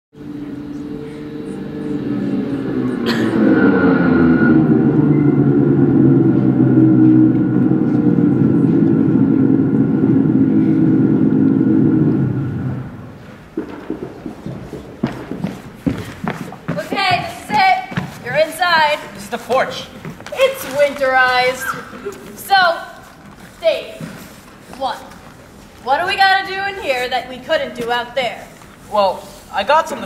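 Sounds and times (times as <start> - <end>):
snowmobile engine: 0.2 - 13.2.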